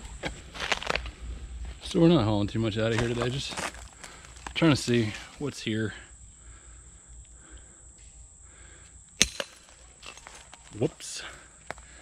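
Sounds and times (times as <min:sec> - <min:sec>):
flip-flop footsteps on leaves: 0:00.2 - 0:01.1, 0:02.9 - 0:05.4.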